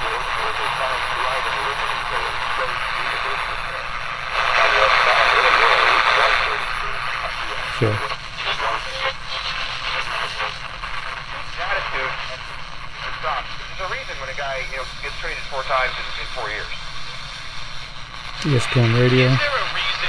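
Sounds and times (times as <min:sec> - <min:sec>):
faint broadcast voice: 0:00.0 - 0:17.5, 0:18.3 - 0:20.0
radio static hissing: 0:00.0 - 0:20.0.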